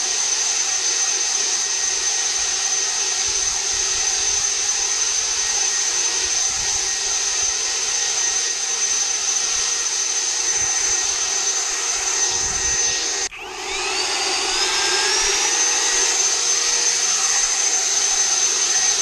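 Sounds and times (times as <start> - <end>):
high-pitched fan whine: 0.0 - 19.0
leaf blower air rush: 0.0 - 19.0.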